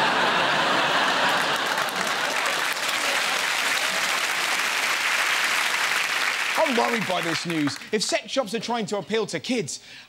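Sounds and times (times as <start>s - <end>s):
audience applauding: 0.0s - 8.1s.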